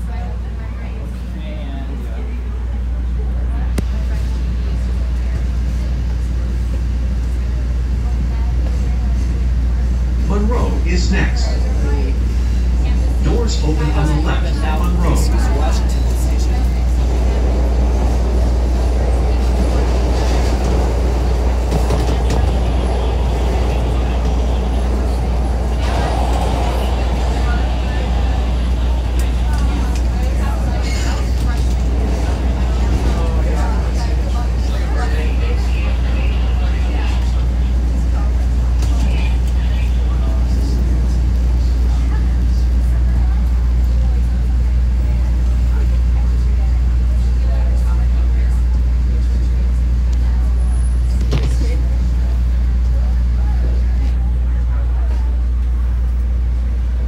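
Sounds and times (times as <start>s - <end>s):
subway train rumbling in tunnel: 0.0s - 57.0s.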